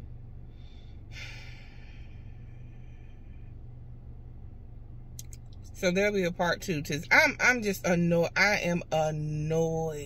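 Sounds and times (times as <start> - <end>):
woman sighing: 1.1 - 2.2.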